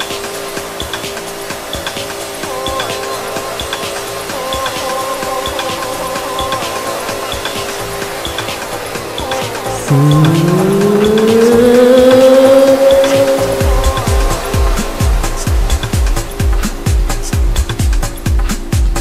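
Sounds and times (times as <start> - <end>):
held synth notes: 9.8 - 17.6
rising gliding synth tone: 9.9 - 16.4
kick drum beat: 13.6 - 19.0.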